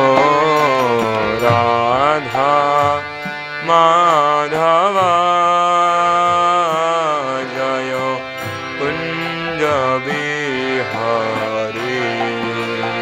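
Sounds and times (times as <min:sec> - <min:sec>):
man singing slow melody: 0:00.0 - 0:13.0
steady drone: 0:00.0 - 0:13.0.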